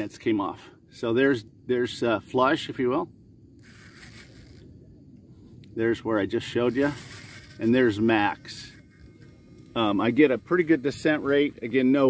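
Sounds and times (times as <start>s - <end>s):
small servo whirring: 3.6s - 4.8s, 5.9s - 12.0s.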